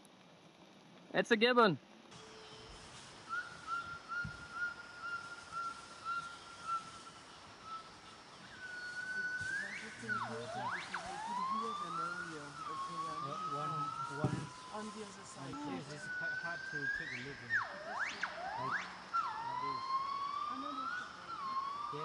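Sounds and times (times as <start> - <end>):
gibbons whooping and hooting: 8.5 - 22.0.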